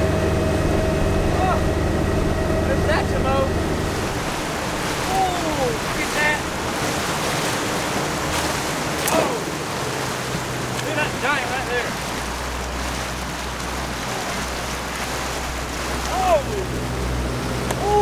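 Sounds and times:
boat motor running: 0.0s - 18.0s
water noise: 0.0s - 18.0s
wind: 0.0s - 18.0s.

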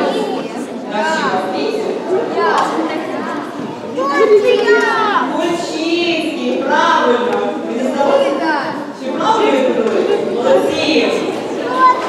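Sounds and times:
children's voices: 0.0s - 12.0s
speech: 0.0s - 12.0s.

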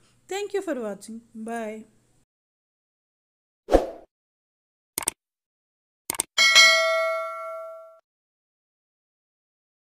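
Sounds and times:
bell ding: 6.4s - 8.0s.

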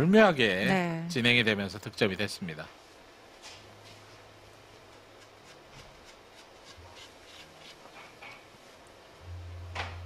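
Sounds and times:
chalk scratching on cue tip: 5.2s - 8.0s.

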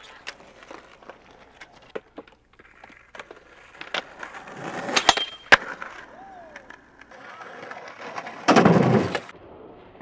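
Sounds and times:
skateboard grinding on wood: 0.0s - 9.3s
skateboard cracks: 0.0s - 10.0s
skateboard wheels rolling: 0.0s - 10.0s.

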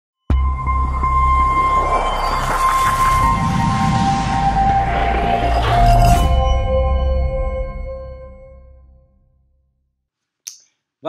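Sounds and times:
low drone: 0.3s - 9.0s
synthesizer tone: 0.3s - 9.1s
whooshing sweep: 0.6s - 8.0s.

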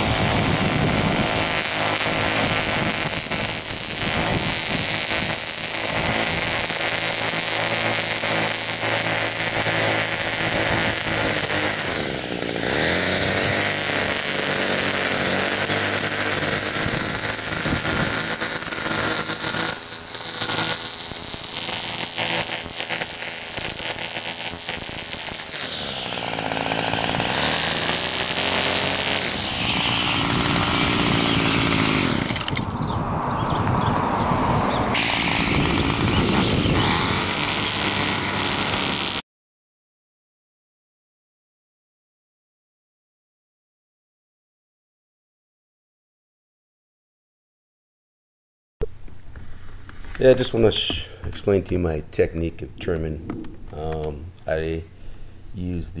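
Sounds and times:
string trimmer engine: 0.0s - 32.8s, 34.9s - 39.2s
trimmer line cutting grass: 0.0s - 39.2s, 49.6s - 52.0s.

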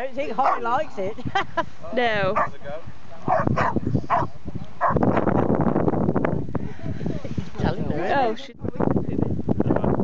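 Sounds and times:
dog barking: 0.4s - 0.8s, 2.3s - 2.6s, 3.2s - 5.3s.

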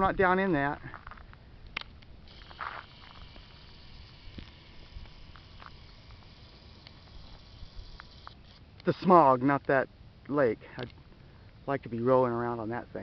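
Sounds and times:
faint high hiss: 0.0s - 13.0s
small ticks: 1.7s - 9.0s.

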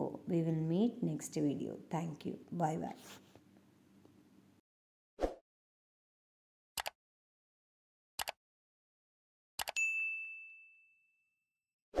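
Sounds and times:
notification bell ding: 9.7s - 11.3s.

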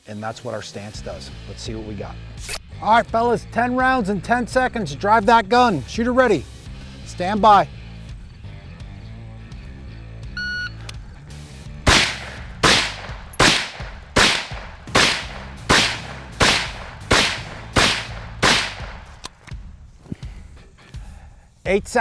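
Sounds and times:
background music: 0.0s - 22.0s
shot timer beep: 10.4s - 10.8s
rifle single shots: 11.9s - 19.2s.

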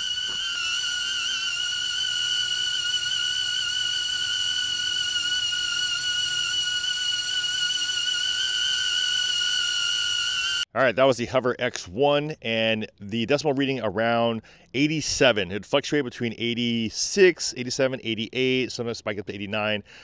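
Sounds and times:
drone propellers whining: 0.0s - 10.6s.

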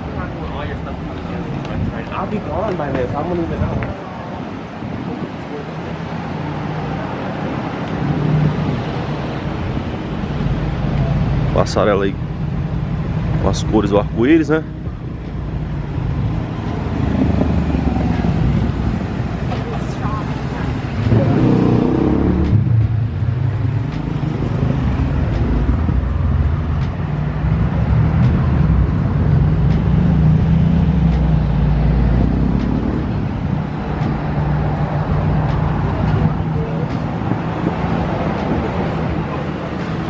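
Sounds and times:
people talking: 0.0s - 4.5s, 10.9s - 12.2s, 13.4s - 14.7s, 19.5s - 21.8s, 35.8s - 37.2s
cars passing: 0.0s - 40.0s.

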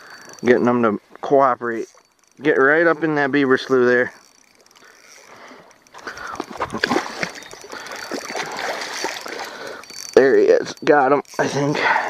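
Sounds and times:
fish thrashing and splashing: 1.8s - 11.6s.

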